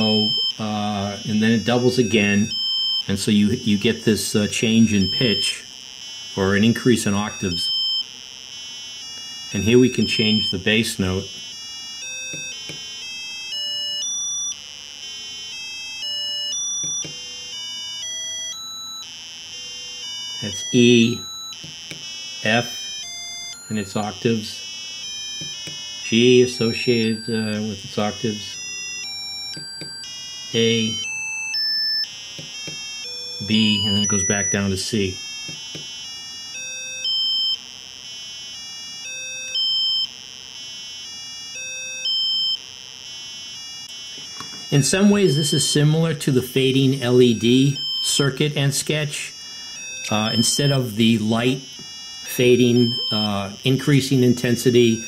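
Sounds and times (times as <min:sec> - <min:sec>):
buzzy square-wave tones stepping up: 0:00.0 - 0:55.0.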